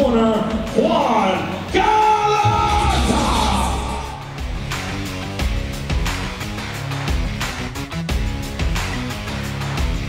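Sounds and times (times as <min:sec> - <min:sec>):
loud music with heavy bass: 0:01.8 - 0:10.0.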